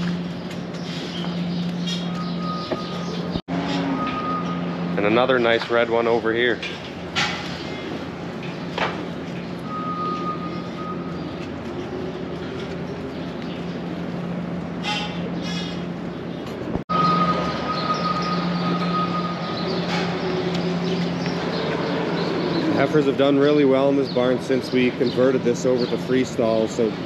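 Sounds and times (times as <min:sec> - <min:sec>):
low mechanical hum: 0:00.0 - 0:27.0.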